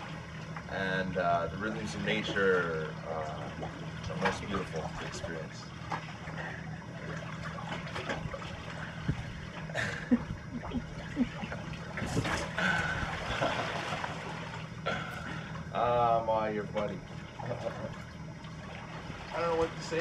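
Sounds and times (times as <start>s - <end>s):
low hum: 0.0s - 20.0s
sea water lapping on pebble shore: 17.2s - 20.0s.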